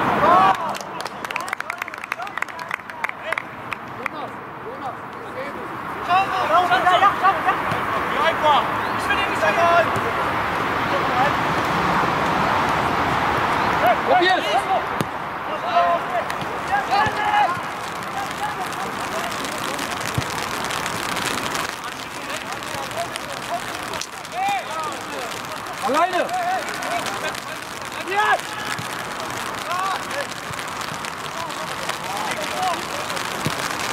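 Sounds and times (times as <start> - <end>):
players shouting: 0.0 - 3.6, 6.0 - 11.5, 12.6 - 33.9
background noise: 0.0 - 33.9.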